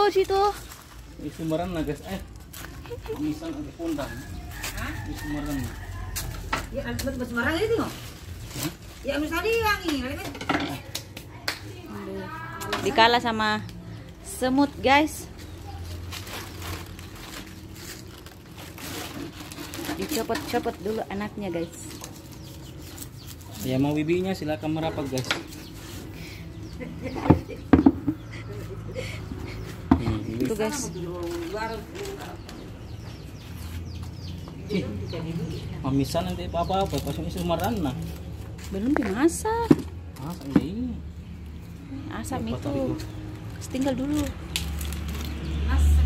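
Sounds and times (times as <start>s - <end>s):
voices talking indistinctly: 0.0s - 17.7s, 19.7s - 46.0s
plants knocking against plastic pot: 27.1s - 28.3s, 29.8s - 30.7s, 38.8s - 40.8s.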